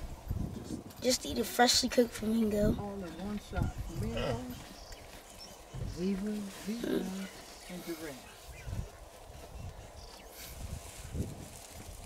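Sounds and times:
person murmuring: 4.0s - 4.6s.

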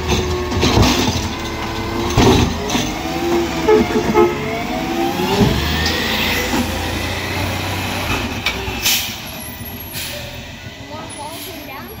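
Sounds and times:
garbage truck engine rumble: 0.0s - 12.0s.

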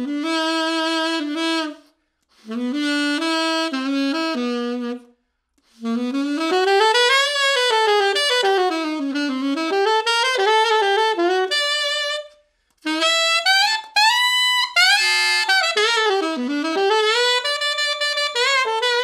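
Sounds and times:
alto saxophone quick runs: 0.0s - 19.0s.

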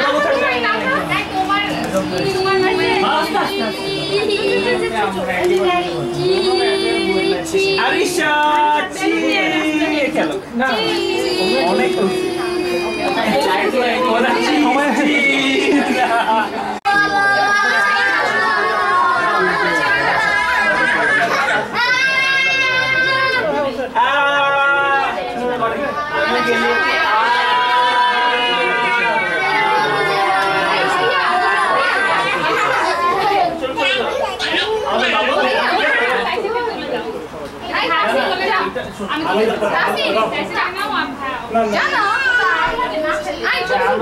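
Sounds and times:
overlapping adult chatter: 0.0s - 44.0s.

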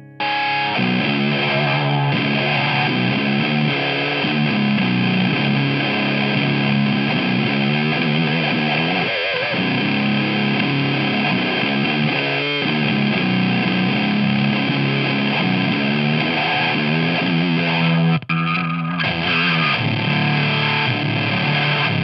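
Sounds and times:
fuzzy distorted electric guitar: 0.0s - 22.0s.

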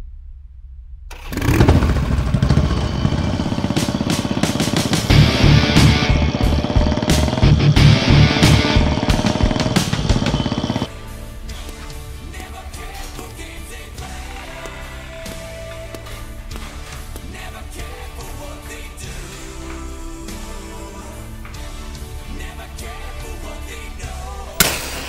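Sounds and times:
motorcycle engine running: 1.1s - 10.9s
loud music track: 1.2s - 25.0s.

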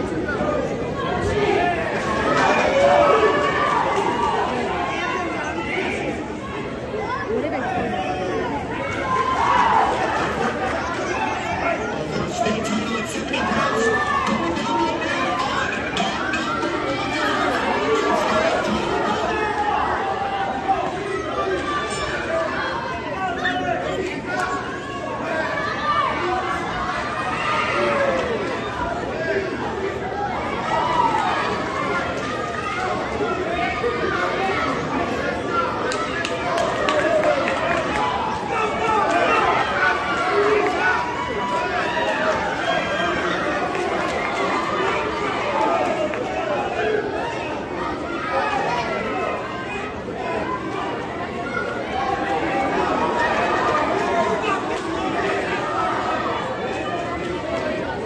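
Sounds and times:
crowd chatter in large hall: 0.0s - 58.0s.

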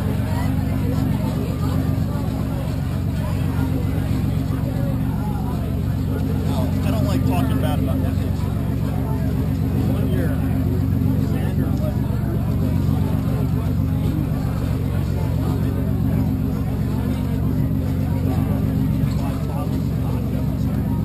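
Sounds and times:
low motor hum: 0.0s - 21.0s
people talking: 0.0s - 21.0s.

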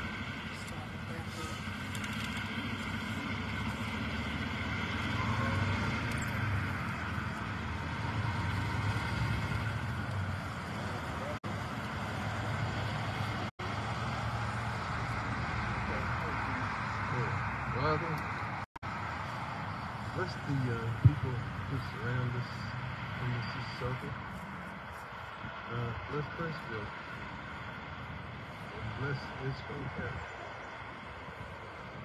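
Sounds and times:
faint voices: 0.0s - 4.1s, 5.0s - 6.3s, 20.0s - 24.6s, 25.4s - 27.0s, 28.6s - 30.9s.

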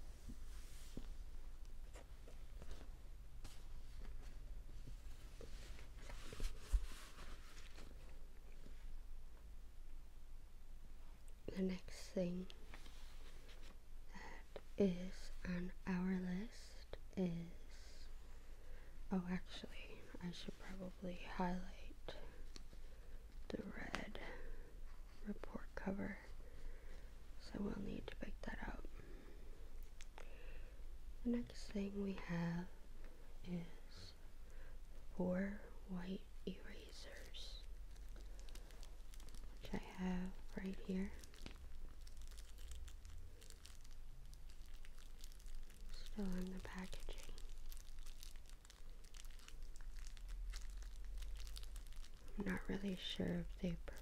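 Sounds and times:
soft whispering: 11.4s - 54.0s
plastic packaging crinkling: 37.1s - 54.0s.

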